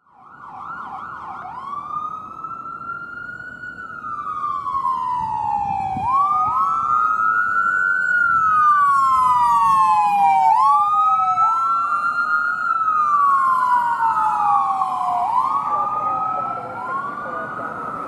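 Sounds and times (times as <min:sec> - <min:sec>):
ambulance siren wailing: 0:00.0 - 0:18.0.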